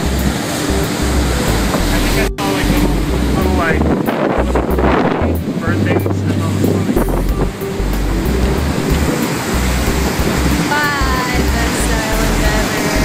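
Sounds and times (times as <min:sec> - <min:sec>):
boat wake rushing: 0:00.0 - 0:13.0
wind buffeting microphone: 0:00.0 - 0:13.0.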